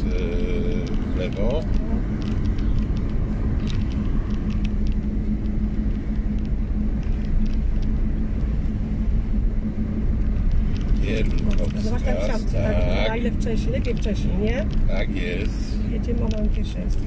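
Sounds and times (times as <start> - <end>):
car engine hum: 0.0 - 17.0.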